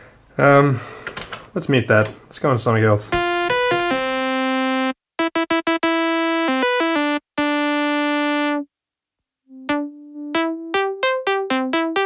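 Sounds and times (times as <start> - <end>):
synthesizer notes: 3.1 - 8.7, 9.5 - 12.0.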